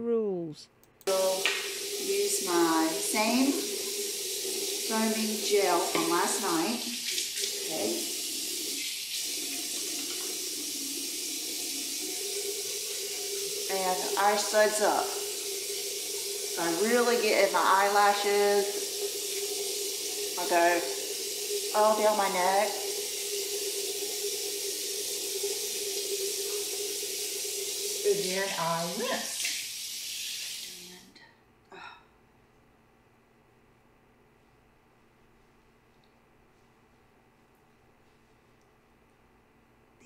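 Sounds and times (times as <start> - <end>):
tap running into sink: 1.1 - 21.7.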